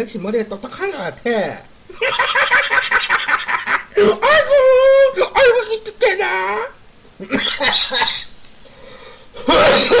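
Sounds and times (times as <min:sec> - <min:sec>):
man wheezing laughter: 0:02.0 - 0:05.0, 0:07.2 - 0:08.3, 0:09.4 - 0:10.0.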